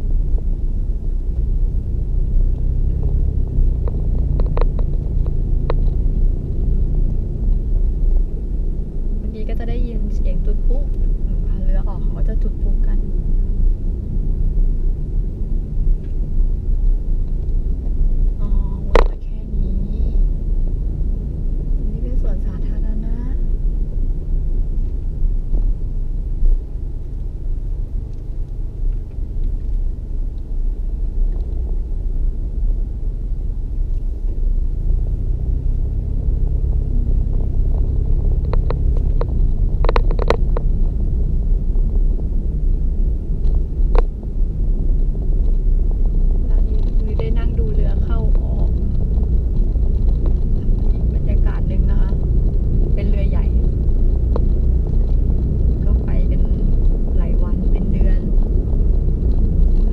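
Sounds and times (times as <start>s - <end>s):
car road and engine rumble: 0.0s - 59.9s.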